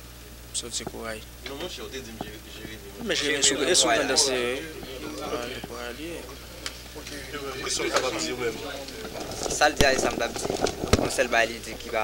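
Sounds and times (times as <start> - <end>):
crackly hissy background: 0.0 - 12.0
quiet indistinct voices: 0.2 - 12.0
person speaking: 0.6 - 12.0.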